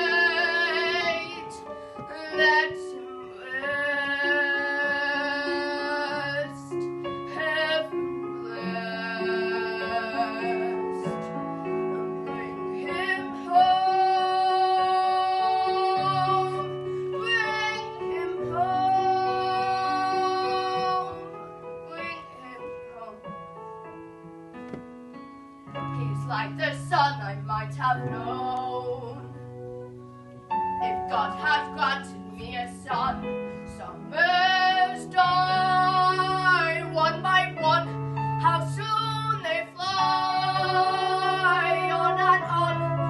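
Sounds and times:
boy singing with vibrato: 0:00.0 - 0:23.3, 0:26.0 - 0:29.9, 0:30.5 - 0:43.0
quiet musical accompaniment: 0:00.0 - 0:43.0.

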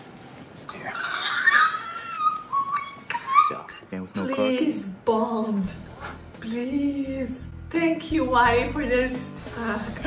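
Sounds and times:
woman squealing: 0:00.9 - 0:04.6.

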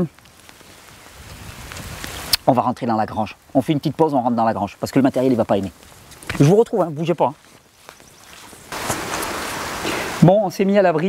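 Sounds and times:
steady rain: 0:00.0 - 0:11.0.

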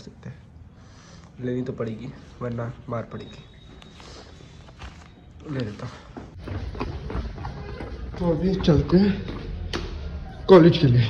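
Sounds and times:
quick footsteps on stairs: 0:04.9 - 0:10.5.

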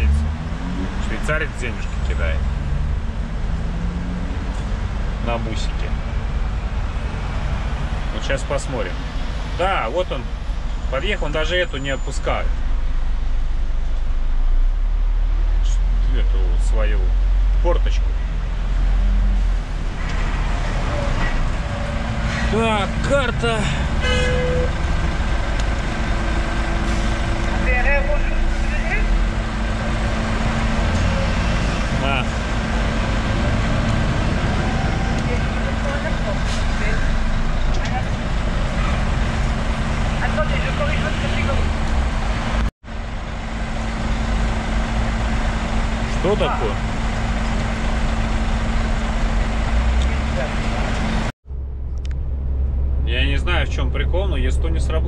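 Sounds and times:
truck engine running on the move: 0:00.0 - 0:55.0.

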